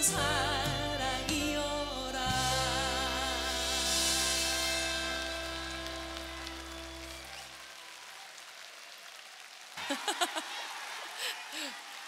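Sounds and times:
band holding final chord: 0:00.0 - 0:07.4
audience applauding: 0:04.2 - 0:12.0.

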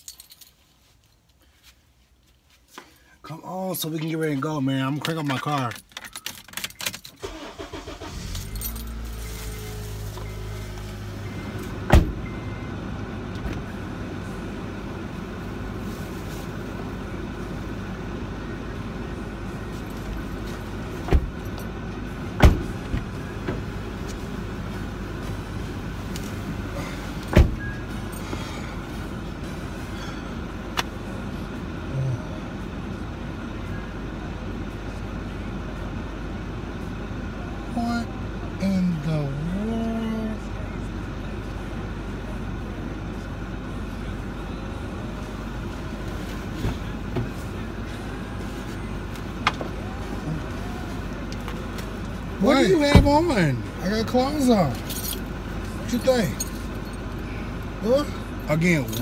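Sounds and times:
car engine starting and idling: 0:03.0 - 0:59.0.

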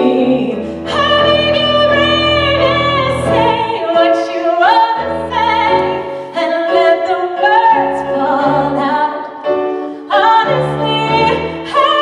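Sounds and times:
piano accompaniment: 0:00.0 - 0:12.0
woman singing pop ballad: 0:10.0 - 0:12.0.

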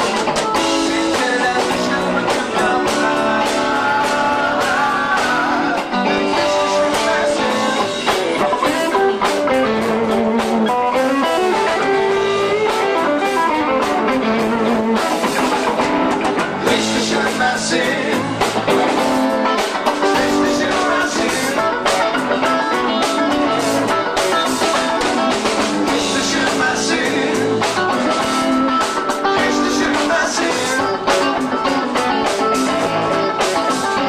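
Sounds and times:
bass guitar: 0:00.0 - 0:34.0
drum kit: 0:00.0 - 0:34.0
electric guitars: 0:00.0 - 0:34.0.

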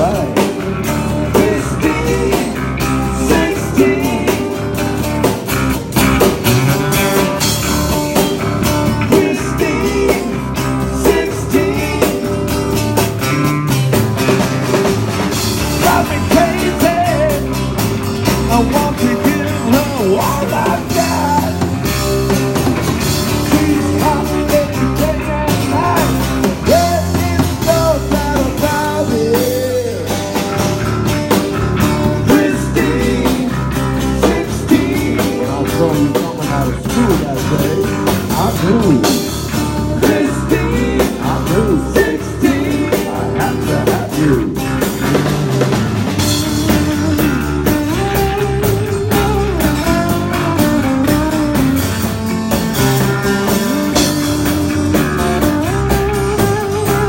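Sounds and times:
person singing: 0:00.0 - 0:05.0, 0:09.0 - 0:12.4, 0:15.7 - 0:17.6, 0:18.3 - 0:21.8, 0:23.3 - 0:30.2, 0:32.1 - 0:45.2, 0:46.3 - 0:51.8, 0:55.4 - 0:57.0
rock band playing live: 0:00.0 - 0:57.0.

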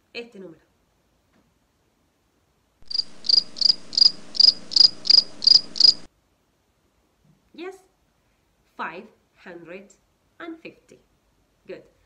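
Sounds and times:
crickets chirping: 0:02.8 - 0:06.1.

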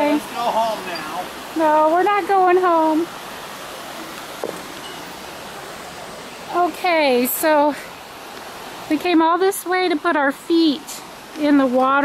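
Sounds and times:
creek water rushing: 0:00.0 - 0:12.0
faint knock: 0:04.4 - 0:04.6.

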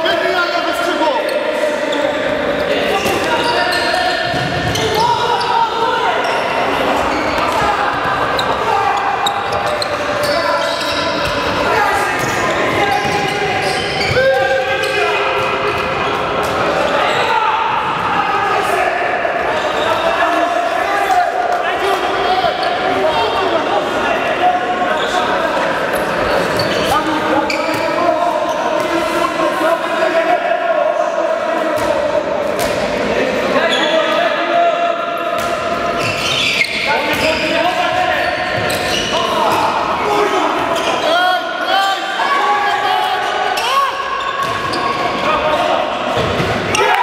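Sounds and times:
players shouting: 0:00.0 - 0:32.4, 0:33.3 - 0:47.0
ball bouncing on court: 0:04.2 - 0:05.0.

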